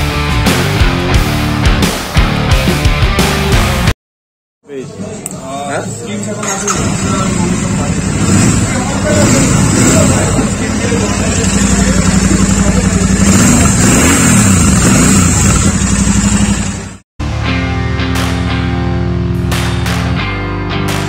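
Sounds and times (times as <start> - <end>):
motorcycle engine idling: 6.4 - 17.0.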